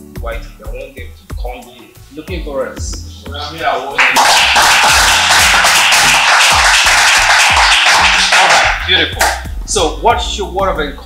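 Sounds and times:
music with sliding deep bass: 0.0 - 11.0
loud applause: 3.9 - 9.4.

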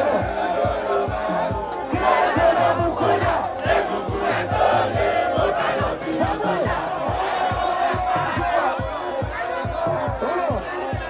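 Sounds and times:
crowd voices: 0.0 - 11.0
kick drum beat: 0.0 - 11.0
loud live concert music: 0.0 - 11.0.

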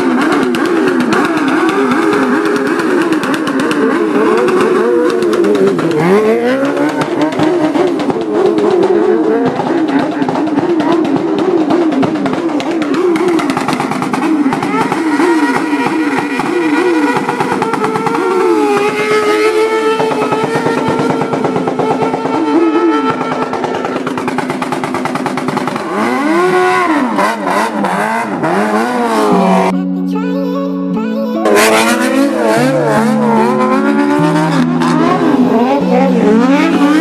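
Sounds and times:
motorcycle engine revving: 0.0 - 30.0, 31.4 - 37.0.

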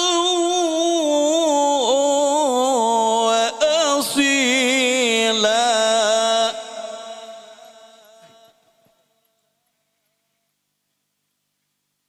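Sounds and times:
man reciting melodically with echo: 0.0 - 9.6.

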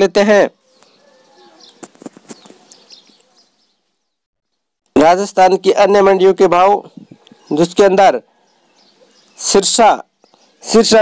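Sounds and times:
faint birds calling: 0.2 - 4.7, 6.0 - 11.0.

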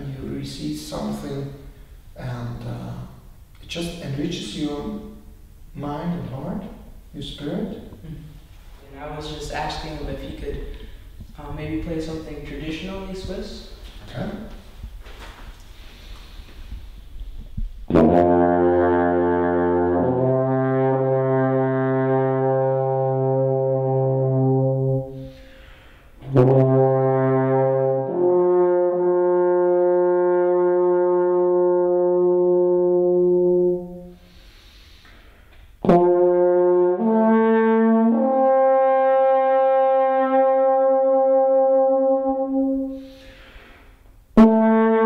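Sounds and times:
player breathing in: 15.7 - 16.8, 25.2 - 26.2, 34.2 - 35.5, 43.0 - 44.0.

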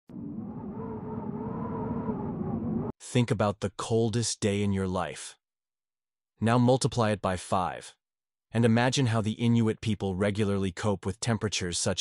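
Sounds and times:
wind howling: 0.1 - 3.0.

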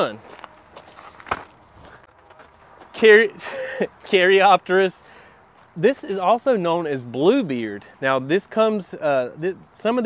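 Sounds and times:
soft footsteps: 0.0 - 3.1, 5.5 - 5.8.

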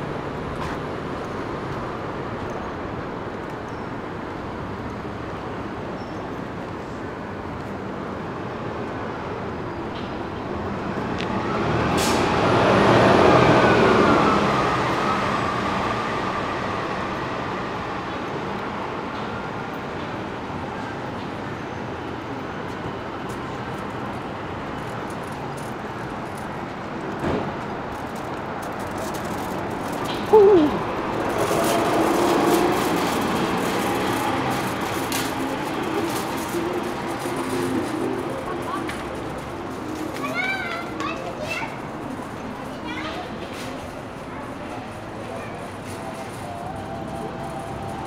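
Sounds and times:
city street noise: 0.0 - 48.0
passersby talking: 27.6 - 48.0
child calling out: 30.2 - 30.9.

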